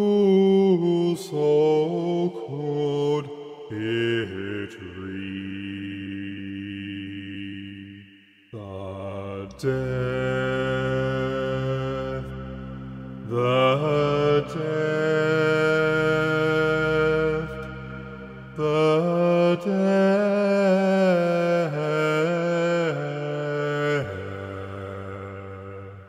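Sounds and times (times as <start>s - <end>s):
low voice singing held notes: 0.0s - 26.0s
slow orchestral music: 9.6s - 20.0s.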